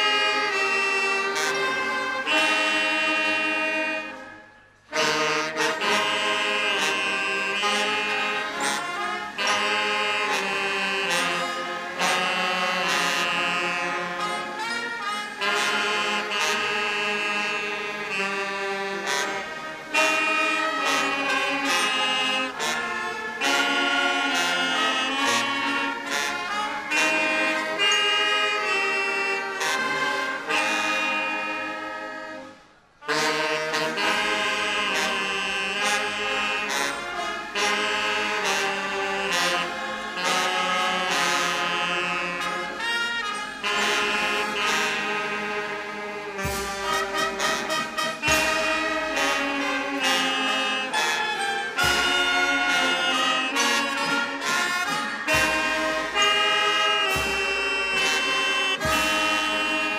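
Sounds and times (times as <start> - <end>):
brass band playing an anthem: 0.0 - 59.9.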